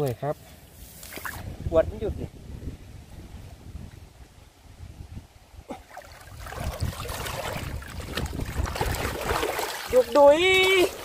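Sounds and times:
wind rumble on microphone: 1.2s - 11.0s
water sloshing and splashing: 5.7s - 11.0s
water pouring through mesh: 5.9s - 11.0s.

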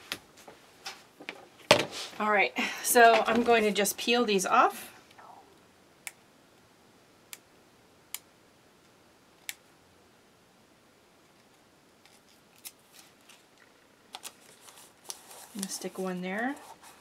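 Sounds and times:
paper rustling: 12.0s - 17.0s.

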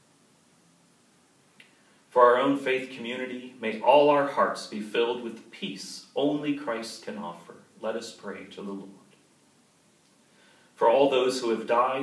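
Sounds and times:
faint click: 1.6s - 1.8s.

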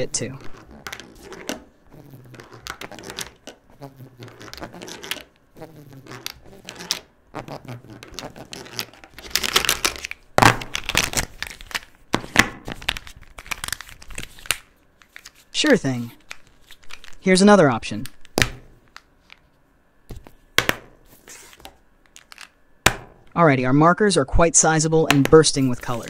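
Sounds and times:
plastic markers clicking and clattering: 2.3s - 3.6s.

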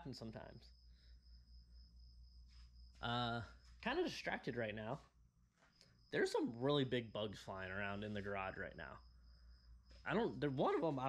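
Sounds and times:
high-pitched cricket trill: 0.0s - 11.0s.

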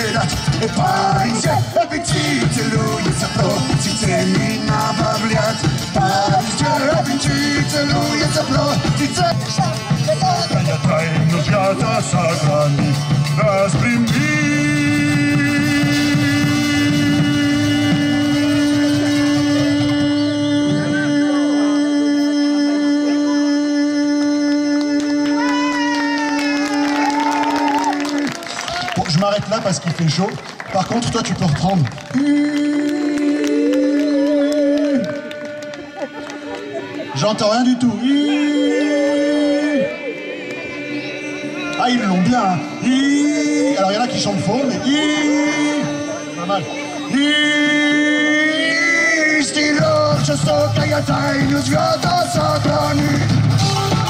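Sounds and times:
band playing with drum kit: 0.0s - 22.3s, 25.4s - 54.0s
hurdy-gurdy drone and melody: 0.0s - 24.1s, 31.9s - 54.0s.

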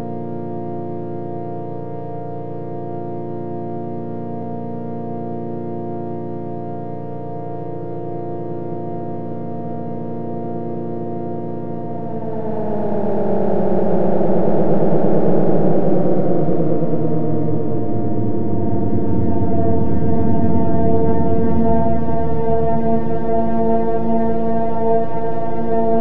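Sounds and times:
electronic synthesizer drone: 9.2s - 26.0s.

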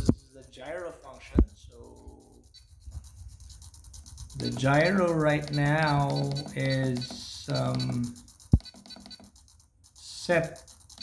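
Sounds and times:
person speaking: 4.3s - 8.3s, 10.0s - 10.7s.

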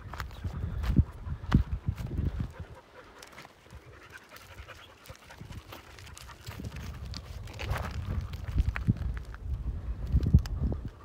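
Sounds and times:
footsteps on stony ground: 0.0s - 11.0s
dog panting: 0.9s - 7.5s.

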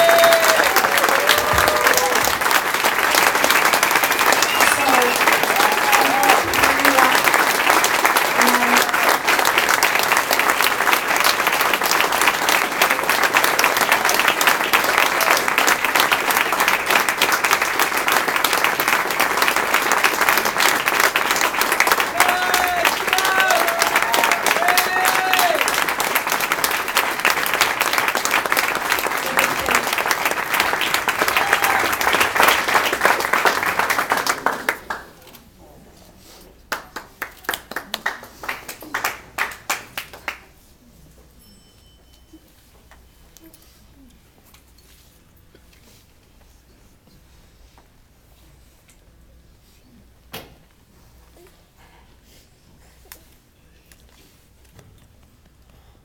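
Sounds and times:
crowd applause: 0.0s - 35.2s, 36.7s - 40.4s.

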